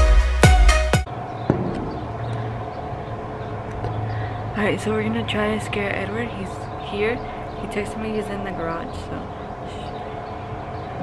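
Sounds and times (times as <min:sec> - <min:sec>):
low outdoor background hum: 0:01.1 - 0:11.0.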